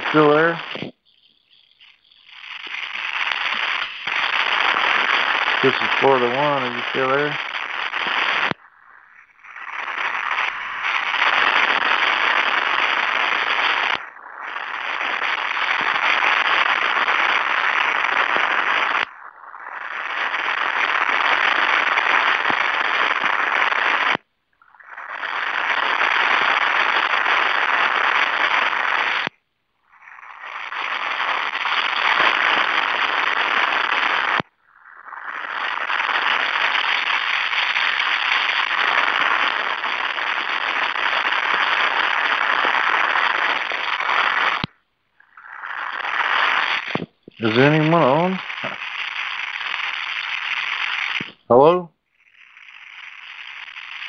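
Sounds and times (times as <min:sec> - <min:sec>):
crackly static hiss: 0:00.0 - 0:54.0.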